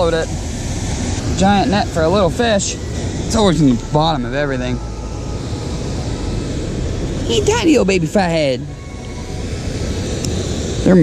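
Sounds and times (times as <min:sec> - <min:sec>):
river water rushing: 0:00.0 - 0:10.9.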